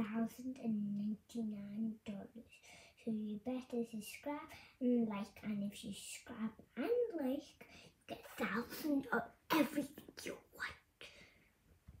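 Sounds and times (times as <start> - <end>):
faint breath: 2.6 - 3.0, 7.6 - 8.0, 11.0 - 11.6
girl whispering: 6.4 - 11.3.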